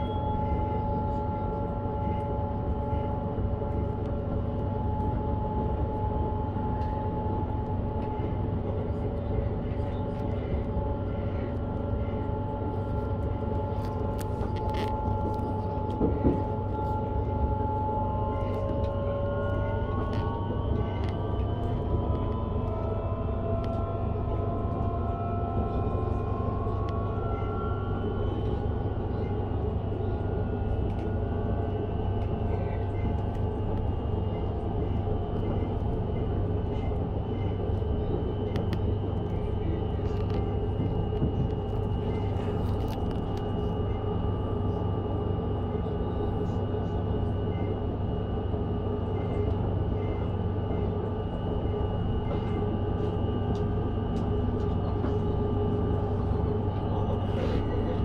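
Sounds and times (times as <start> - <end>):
train wheels rumbling on rails: 0.4 - 43.6.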